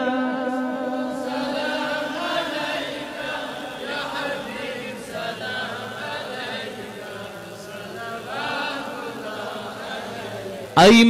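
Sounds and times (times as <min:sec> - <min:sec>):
chanting vocal chorus: 0:00.0 - 0:11.0.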